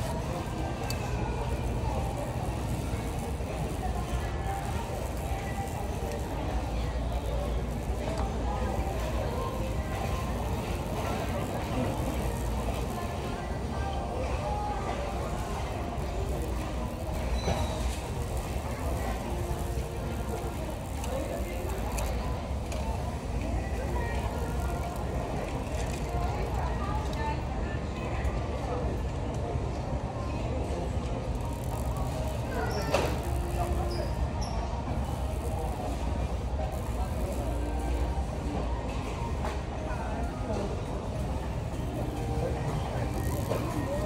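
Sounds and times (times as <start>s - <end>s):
shopping cart rolling: 0.0s - 27.5s, 30.7s - 39.7s, 40.4s - 44.0s
faint background music: 0.0s - 44.0s
indistinct chatter: 0.0s - 44.0s.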